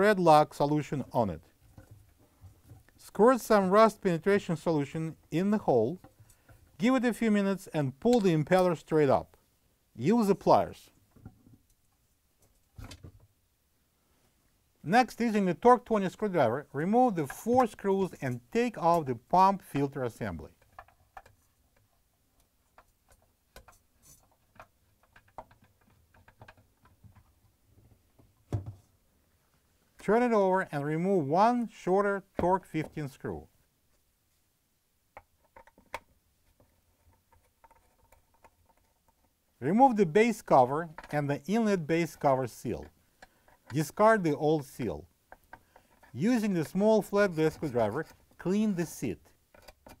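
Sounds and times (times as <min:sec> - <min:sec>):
hands handling plastic parts: 0:17.2 - 0:30.1, 0:35.1 - 0:39.6, 0:40.3 - 0:50.0
plastic clicks and scrapes: 0:19.7 - 0:27.4, 0:35.2 - 0:39.4, 0:49.4 - 0:50.0.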